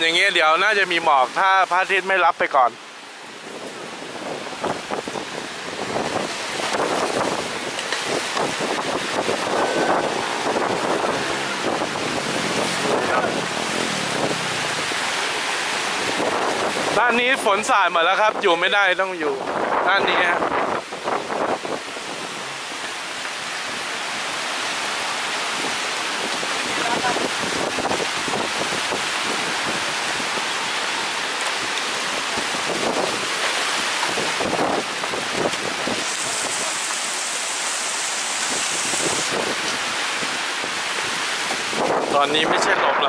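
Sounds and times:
heavy rain on thatched roof: 0.0s - 43.0s
wind buffeting microphone: 3.2s - 43.0s.

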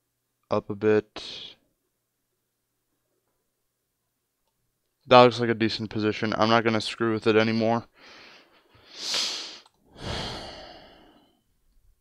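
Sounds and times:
person sighing: 9.0s - 11.4s.

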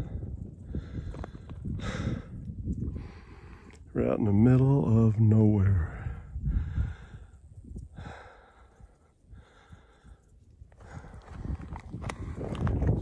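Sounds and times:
person breathing heavily: 0.0s - 3.9s, 5.8s - 12.6s
footsteps crunching on rocky trail: 0.7s - 2.9s, 10.4s - 13.0s.

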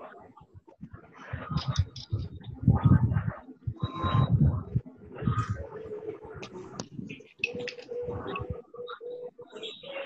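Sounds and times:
bird cooing: 3.7s - 10.0s.

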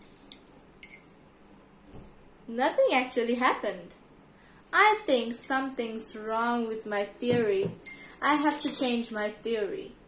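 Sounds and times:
stirrer clinking against glass: 7.8s - 8.7s.

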